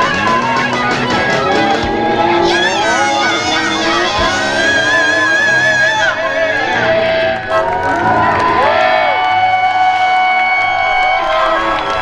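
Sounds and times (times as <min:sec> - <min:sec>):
live rock band: 0:00.0 - 0:07.4
audience cheering and whooping: 0:00.0 - 0:12.0.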